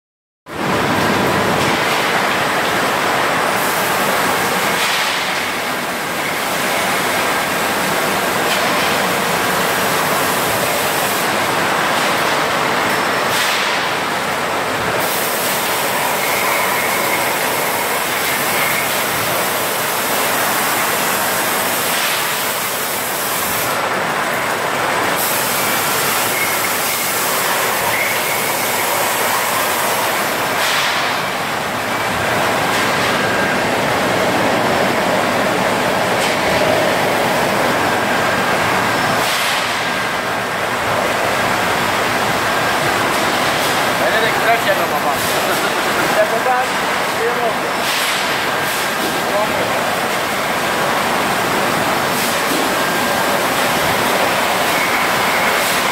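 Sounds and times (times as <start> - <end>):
bottling machinery din: 0.6 - 55.9.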